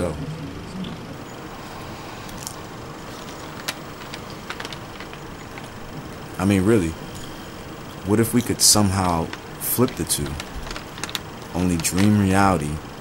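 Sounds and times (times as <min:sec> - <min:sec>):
low background noise: 0:00.0 - 0:13.0.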